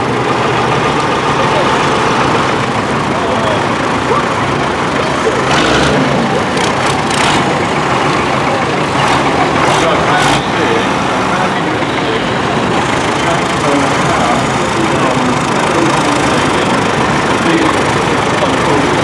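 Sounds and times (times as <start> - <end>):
background voices: 0.0 - 19.0
tractor engines passing: 0.0 - 19.0.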